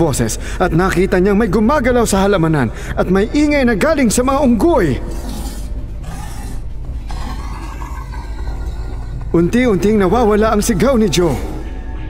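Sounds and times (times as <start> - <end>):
low ambient drone: 0.0 - 12.0.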